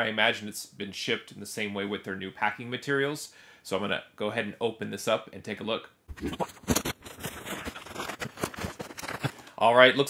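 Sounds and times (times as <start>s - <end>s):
packaging rustling and crackling: 6.3s - 9.5s.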